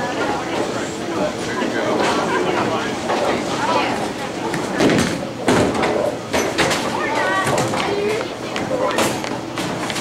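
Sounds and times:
crowd chattering: 0.0s - 9.6s.

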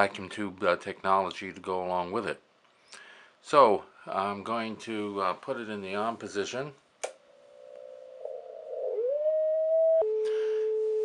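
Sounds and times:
switch clicking: 7.0s - 7.2s
whistling beat note tone: 7.8s - 11.0s.

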